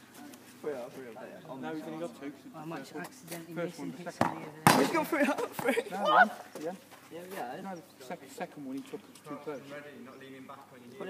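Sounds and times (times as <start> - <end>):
voices reacting: 1.4 - 10.5
ball slamming into goal: 4.2 - 5.1
football kicked: 4.2 - 5.8.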